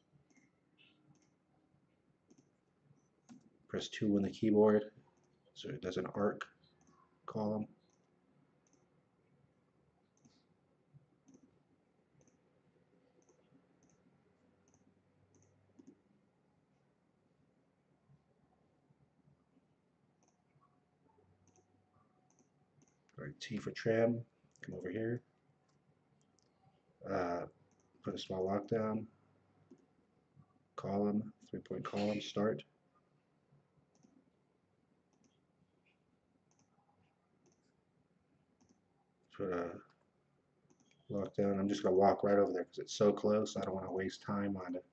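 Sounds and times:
computer mouse clicks: 0:00.3 - 0:01.4, 0:02.3 - 0:03.5, 0:07.8 - 0:08.9, 0:10.1 - 0:10.5, 0:11.2 - 0:11.6, 0:12.2 - 0:12.4, 0:13.2 - 0:16.0, 0:20.2 - 0:20.7, 0:21.4 - 0:21.7, 0:22.3 - 0:23.2, 0:27.7 - 0:28.0, 0:33.9 - 0:34.2, 0:35.1 - 0:36.8, 0:37.4 - 0:37.8, 0:38.6 - 0:38.8, 0:40.7 - 0:41.1.

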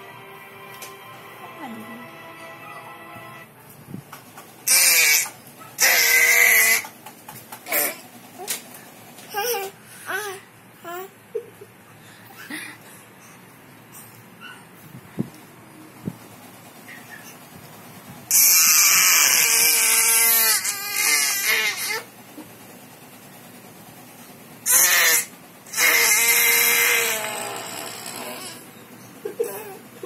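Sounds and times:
baby screaming: 0:04.7 - 0:06.8, 0:18.3 - 0:22.1, 0:24.7 - 0:28.6.

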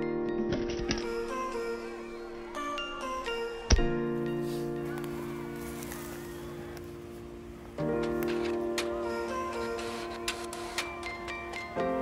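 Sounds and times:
held chord background music: 0:00.0 - 0:12.0.

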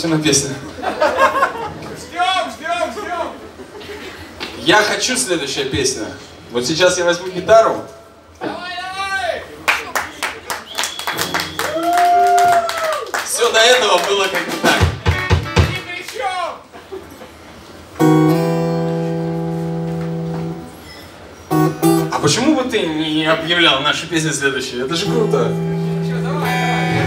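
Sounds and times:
acoustic guitar strum: 0:18.0 - 0:20.8, 0:21.5 - 0:22.2, 0:25.0 - 0:27.0
people talking: 0:22.1 - 0:27.0.

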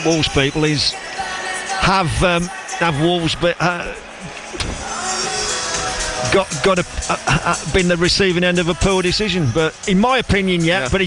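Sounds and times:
stadium music: 0:00.0 - 0:11.0.

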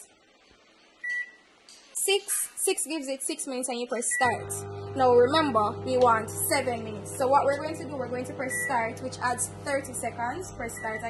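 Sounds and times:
microwave keypad beep: 0:01.0 - 0:01.4, 0:04.1 - 0:05.0, 0:07.8 - 0:09.6, 0:10.4 - 0:11.0.

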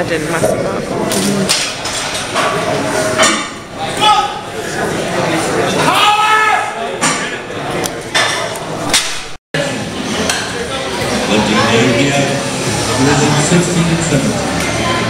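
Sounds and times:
long drawn-out shout: 0:05.8 - 0:06.8
men yelling encouragement: 0:05.8 - 0:06.8.

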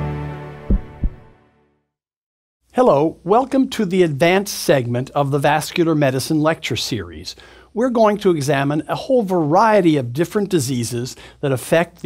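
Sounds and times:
low heartbeat thumps: 0:00.7 - 0:01.3.

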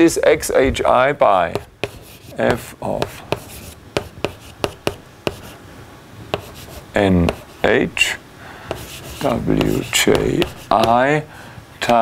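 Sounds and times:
chalk scraping: 0:01.5 - 0:05.6, 0:06.3 - 0:07.8, 0:08.7 - 0:11.0
chalk tapping on blackboard: 0:01.5 - 0:05.6, 0:06.3 - 0:07.7, 0:08.7 - 0:11.1.

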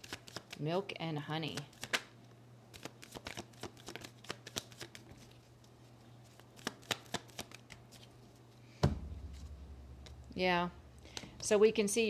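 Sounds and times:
cards shuffled by hand: 0:00.0 - 0:00.6, 0:01.5 - 0:02.1, 0:02.7 - 0:08.4.

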